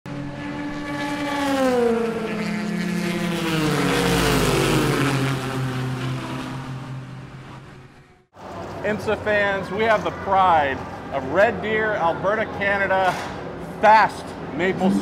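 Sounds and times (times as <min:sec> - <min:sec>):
race car engines passing: 0:00.1 - 0:15.0.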